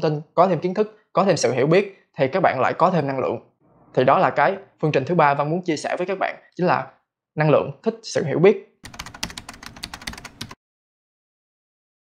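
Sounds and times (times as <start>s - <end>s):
computer keyboard typing: 8.8s - 10.6s.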